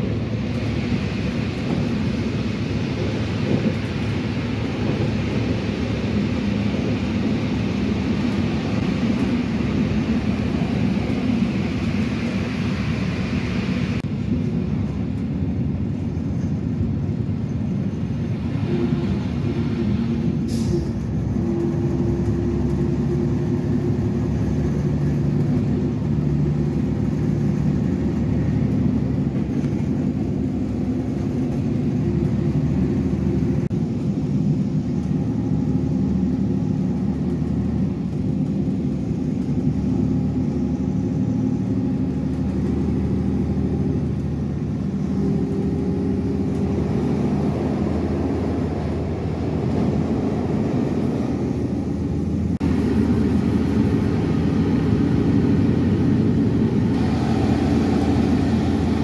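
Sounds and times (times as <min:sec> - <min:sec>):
train engine drone: 0:00.0 - 0:59.0
wheels rumbling on rails: 0:00.0 - 0:59.0.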